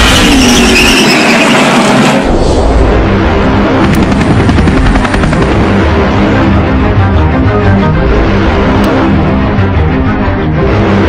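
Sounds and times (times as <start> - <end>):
helicopter rotor chop: 1.3 - 7.2.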